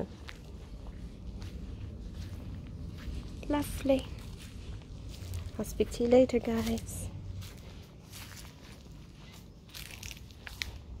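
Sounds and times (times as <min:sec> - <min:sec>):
footsteps crunching on dry leaves: 0:00.0 - 0:11.0.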